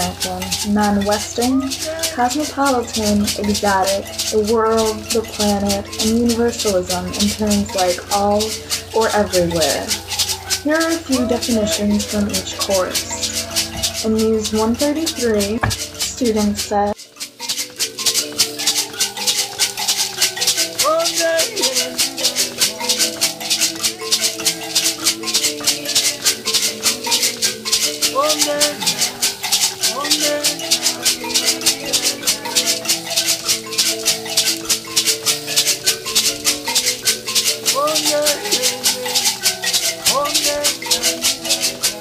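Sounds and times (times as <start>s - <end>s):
gourd shakers: 0.0s - 42.0s
mbiras plucked notes: 0.0s - 42.0s.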